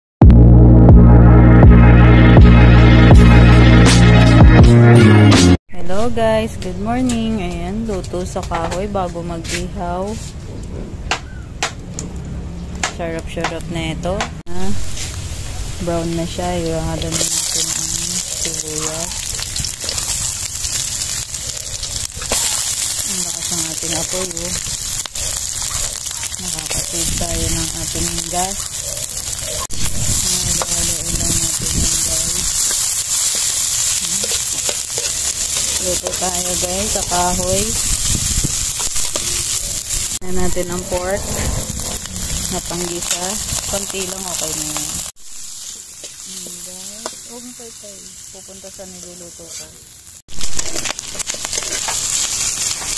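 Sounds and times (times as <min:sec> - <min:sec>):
onions sizzling in oil: 0:14.6 - 0:41.2, 0:41.8 - 0:52.9
sharp crackling pops: 0:17.0 - 0:40.2, 0:42.0 - 0:48.9, 0:50.3 - 0:52.9
steady low rumble: 0:35.4 - 0:45.6
metal spatula scraping pan: 0:40.4 - 0:43.9, 0:50.6 - 0:52.1.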